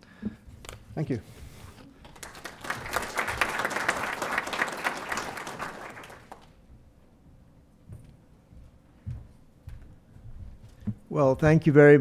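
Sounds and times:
audience applauding: 2.0 - 6.6.

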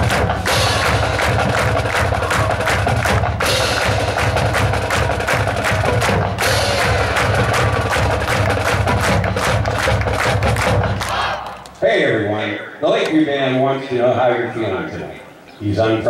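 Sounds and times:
fast dense drum beat: 0.0 - 11.1
marching band playing loudly: 0.0 - 11.8.

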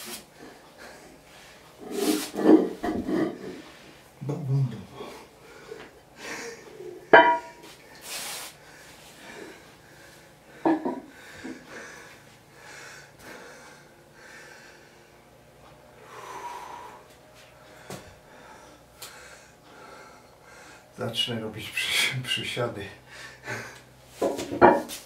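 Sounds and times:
man breathing hard: 0.4 - 2.3, 4.9 - 21.0, 23.0 - 24.1.

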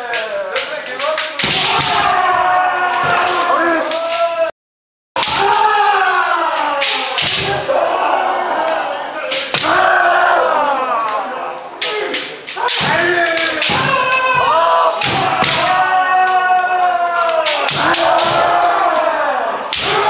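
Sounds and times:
bamboo swords striking: 0.0 - 2.3, 5.2 - 5.8, 6.5 - 7.8, 9.3 - 10.0, 11.8 - 15.8, 17.2 - 19.1, 19.7 - 20.0
people shouting: 0.0 - 4.5, 5.2 - 20.0.

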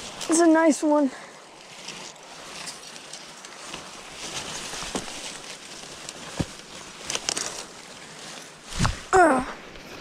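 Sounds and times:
leafy weeds rustling: 0.0 - 10.0
stems crackling: 0.0 - 10.0
footsteps: 1.1 - 9.1.

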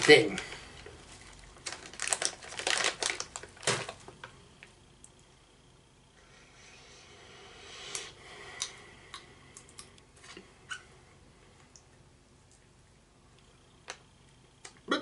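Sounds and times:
seeds cracking between teeth: 1.3 - 4.0.

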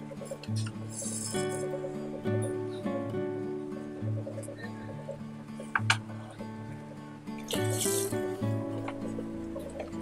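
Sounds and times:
background music: 0.0 - 10.0
fish splashing: 7.5 - 8.4.

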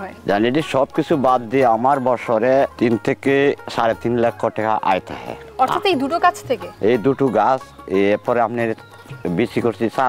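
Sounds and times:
background music: 0.0 - 10.0
indistinct talking: 0.0 - 10.0.

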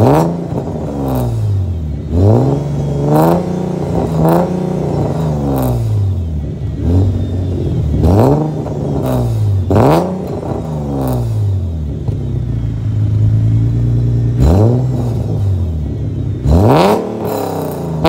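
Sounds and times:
car engine revving: 0.0 - 18.0.

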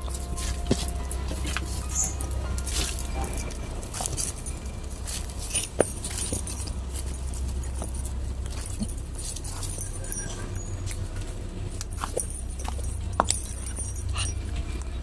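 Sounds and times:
flip-flop footsteps on leaves: 0.0 - 10.0.

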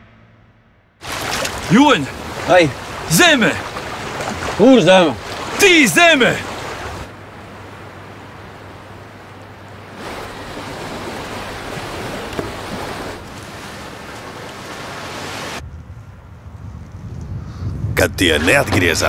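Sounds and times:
wind: 0.0 - 19.0
surf breaking on shore: 1.0 - 15.6.

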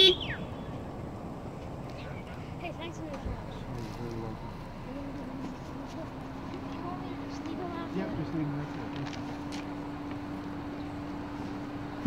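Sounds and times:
whistled tone gliding down: 0.0 - 0.8
outdoor background noise: 0.0 - 12.0.

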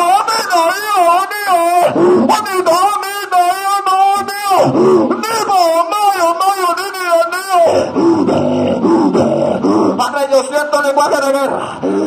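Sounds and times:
man's guttural voice over pa: 0.0 - 12.0.

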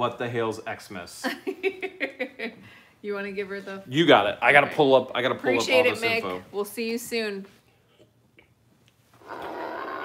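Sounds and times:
woman's growling roar: 9.2 - 10.0.

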